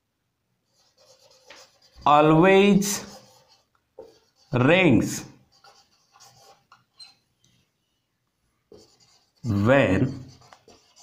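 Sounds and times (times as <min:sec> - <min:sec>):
marker pen scratching on whiteboard: 0:00.6 - 0:07.7, 0:08.7 - 0:11.0.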